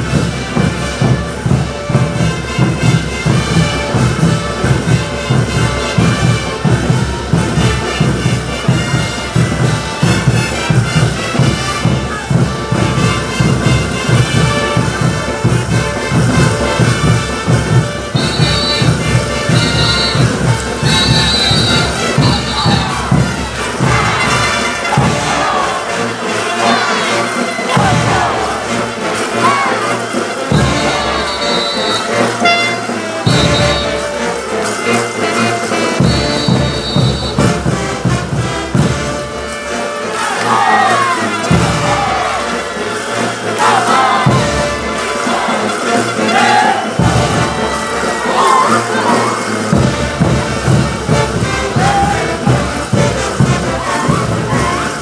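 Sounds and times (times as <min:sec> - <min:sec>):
strong bass beat: 0:00.0 - 0:26.9, 0:27.7 - 0:29.7, 0:43.6 - 0:55.0
brass band playing: 0:00.0 - 0:55.0
dancers shouting: 0:19.8 - 0:32.0, 0:40.2 - 0:49.7, 0:51.7 - 0:52.6, 0:53.7 - 0:55.0.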